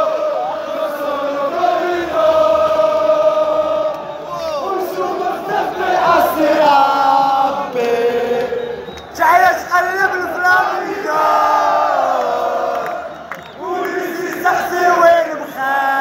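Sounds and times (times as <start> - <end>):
crowd chanting in unison: 0.0 - 16.0.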